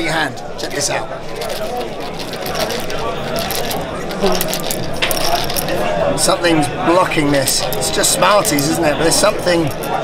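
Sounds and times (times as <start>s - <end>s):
voices chattering: 0.0s - 10.0s
sweets rattling out of a tube: 1.3s - 5.9s.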